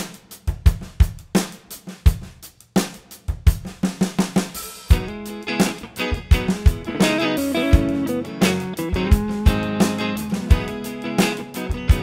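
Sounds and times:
drum kit playing a beat: 0.0s - 12.0s.

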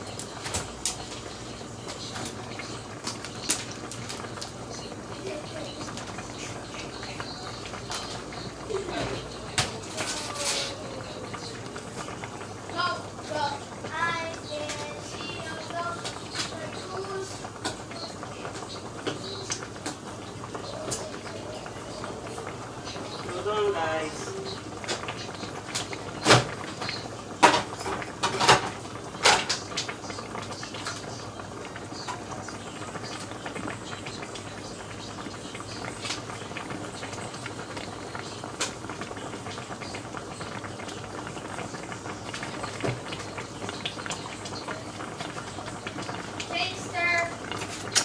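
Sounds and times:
faint voices: 0.0s - 48.0s.

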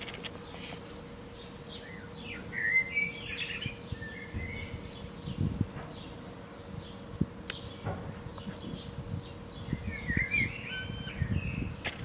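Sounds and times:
birds chirping: 0.0s - 12.0s.

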